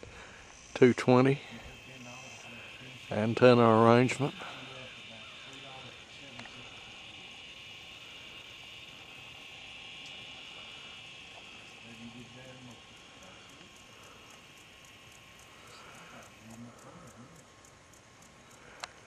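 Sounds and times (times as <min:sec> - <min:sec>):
soft fast ticking: 0:00.0 - 0:19.0
steady high-pitched hum: 0:00.0 - 0:19.0.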